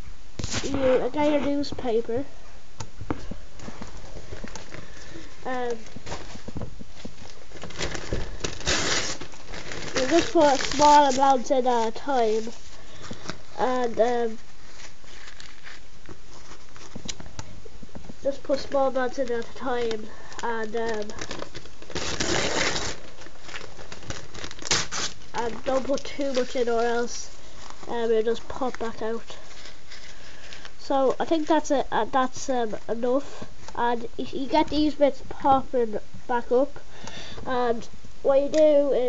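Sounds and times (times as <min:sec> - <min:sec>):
newspaper rustling and crumpling: 0:03.6 - 0:17.4, 0:18.3 - 0:30.7.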